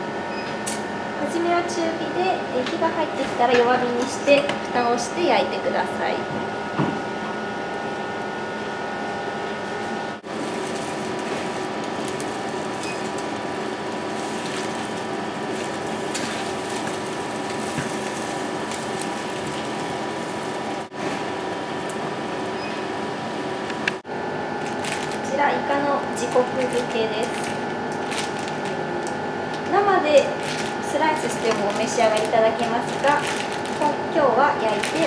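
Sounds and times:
mechanical hum with held tones: 0.0 - 35.0.

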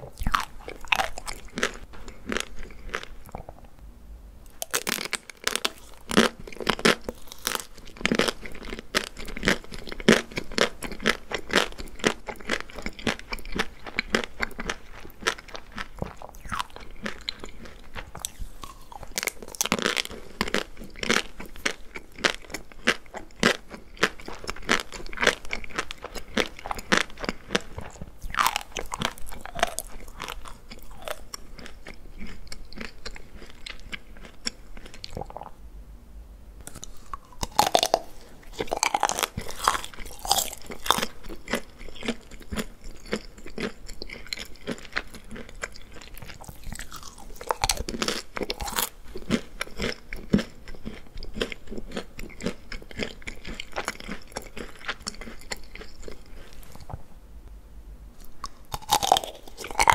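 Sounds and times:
crunching chocolate coating: 0.0 - 3.7, 4.5 - 35.5, 36.6 - 57.0, 58.2 - 59.9
wet chewing: 0.0 - 3.7, 4.5 - 35.5, 36.7 - 57.0, 58.3 - 59.9.

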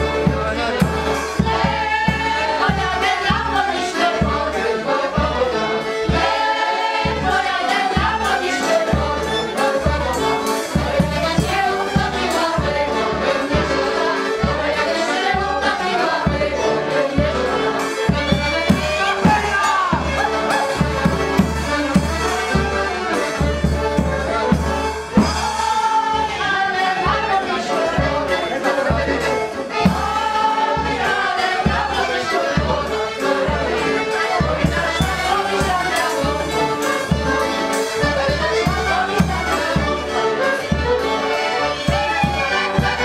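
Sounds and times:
accordion: 0.0 - 43.0
fiddle playing dance music: 0.0 - 43.0
people singing along: 0.0 - 43.0
violins: 0.0 - 43.0.

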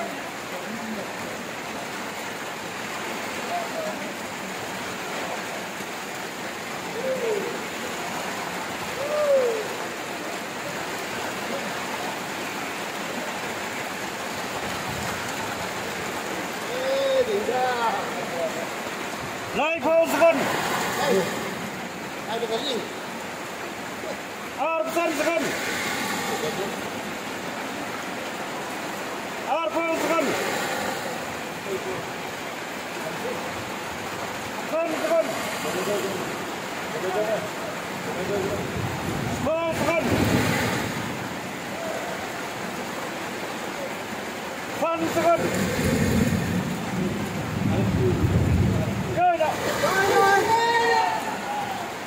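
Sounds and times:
rain hissing: 0.0 - 52.0.

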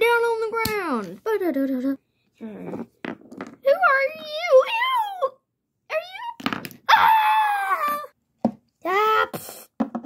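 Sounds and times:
plastic figurines knocking on wood: 6.4 - 6.9, 9.8 - 10.0.

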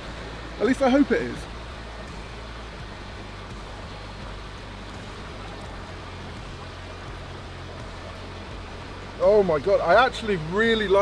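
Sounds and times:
river flowing over stones: 0.0 - 11.0.

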